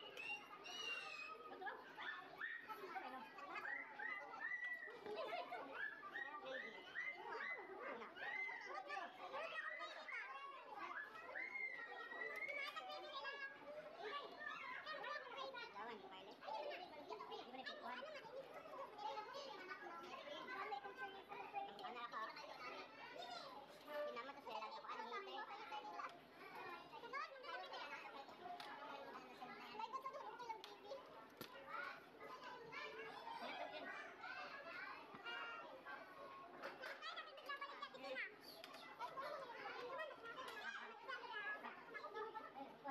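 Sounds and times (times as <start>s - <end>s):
children's voices chattering: 0.0s - 42.9s.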